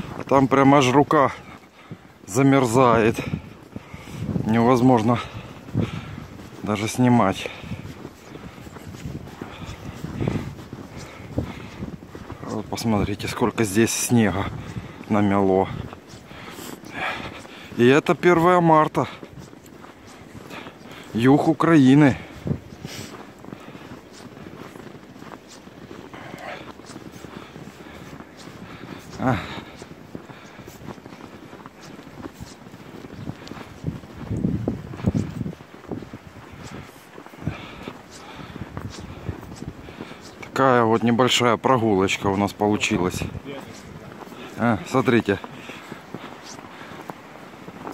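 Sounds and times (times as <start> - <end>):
wind rumbling on microphone: 0.0 - 17.9, 19.0 - 47.9
footsteps crunching through snow: 0.0 - 47.9.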